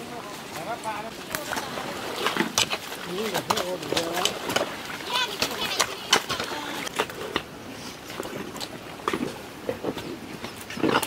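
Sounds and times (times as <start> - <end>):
people talking and calling out: 0.0 - 7.0
splashes of wet mud: 1.1 - 7.4.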